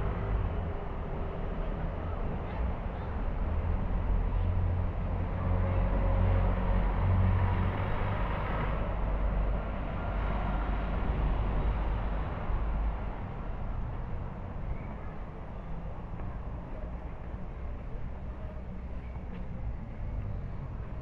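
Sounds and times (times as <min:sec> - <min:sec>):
vehicles passing: 0:00.0 - 0:21.0.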